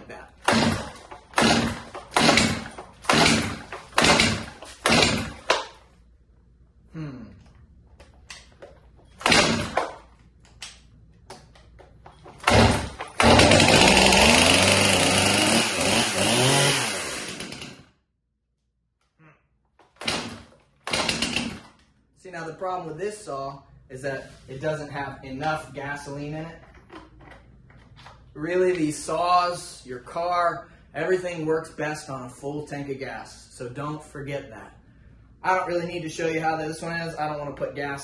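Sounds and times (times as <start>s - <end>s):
chainsaw starter cord pulls: 0.4s - 5.8s, 9.2s - 10.0s, 12.3s - 17.8s, 20.0s - 21.8s
engine cranking without firing: 0.4s - 5.8s, 9.2s - 10.0s, 12.2s - 17.8s.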